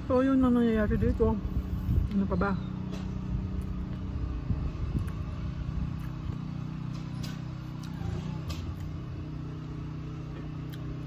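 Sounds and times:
wind buffeting microphone: 0.0 - 6.5
low motor hum: 0.0 - 11.0.

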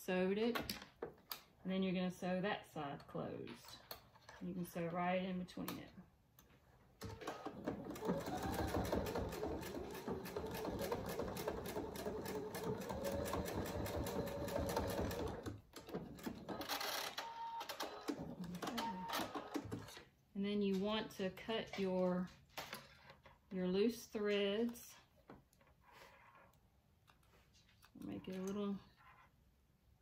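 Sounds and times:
electric sewing machine stitching: 7.0 - 19.9.

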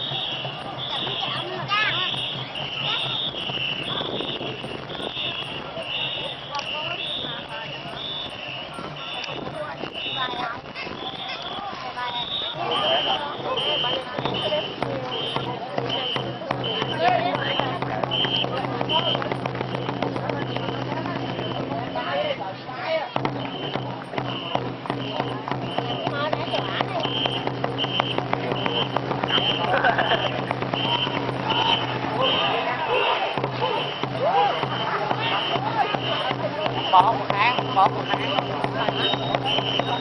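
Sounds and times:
whistle short blasts: 0.0 - 22.1, 23.4 - 40.0
people shouting: 0.0 - 40.0.

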